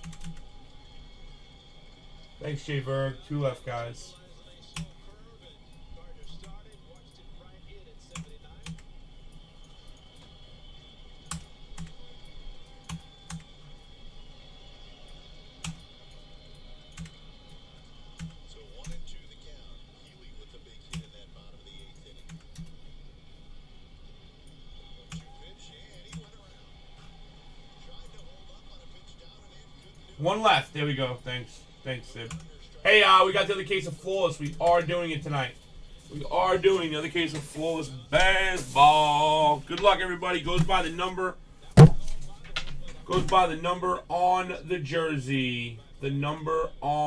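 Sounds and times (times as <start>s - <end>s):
computer keyboard clicks: 0.0s - 0.4s.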